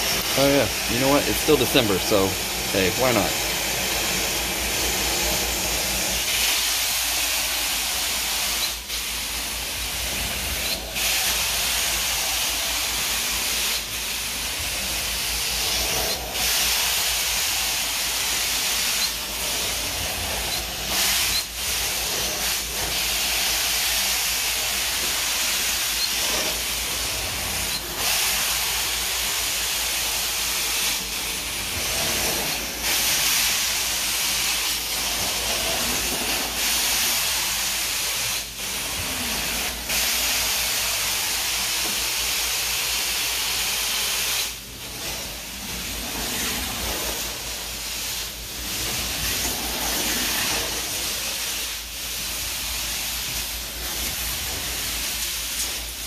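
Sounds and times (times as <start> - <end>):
carpet extractor suction hiss: 0.0 - 56.0.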